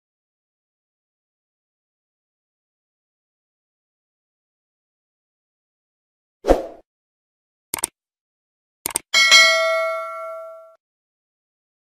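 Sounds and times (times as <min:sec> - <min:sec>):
bright bell ding: 0:09.2 - 0:10.8.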